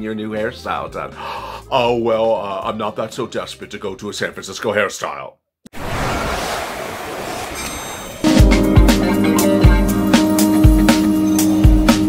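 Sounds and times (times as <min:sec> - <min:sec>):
ocean surf washing onto beach: 0:05.8 - 0:08.3.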